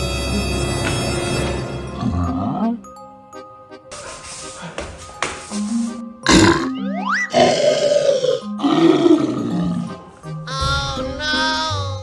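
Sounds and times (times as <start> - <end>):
children's background music: 0.0 - 12.0
monster growls: 7.3 - 9.9.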